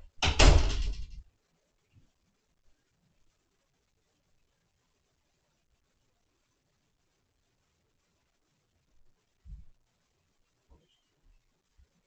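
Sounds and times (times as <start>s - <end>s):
interior door shutting: 0.1s - 1.2s.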